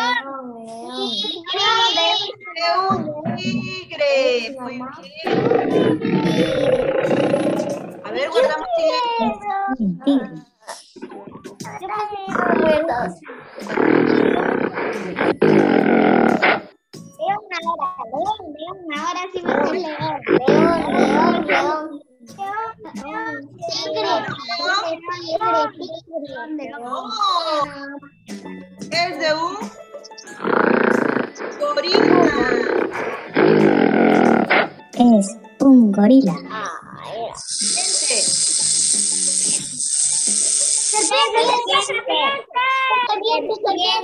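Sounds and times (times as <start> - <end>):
voices: 0.0 - 16.7, 17.3 - 44.0
recorded gorilla calls: 5.2 - 8.1, 12.3 - 16.7, 19.4 - 21.7, 30.2 - 34.9
wild animal roaring: 5.2 - 8.1.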